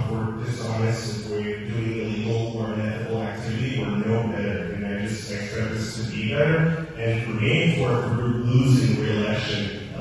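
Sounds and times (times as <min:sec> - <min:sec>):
man speaking in echoing hall: 0:00.0 - 0:10.0.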